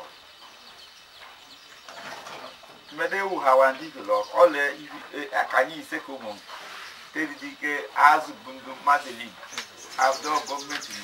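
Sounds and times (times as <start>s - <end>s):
voices: 1.3s - 11.0s.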